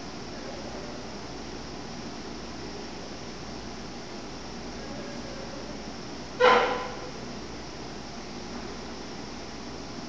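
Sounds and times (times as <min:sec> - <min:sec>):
steady background hiss: 0:00.0 - 0:10.0.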